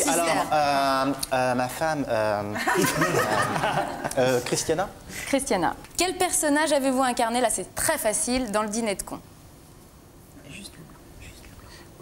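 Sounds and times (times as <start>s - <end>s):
faint whispered speech: 10.4s - 11.7s.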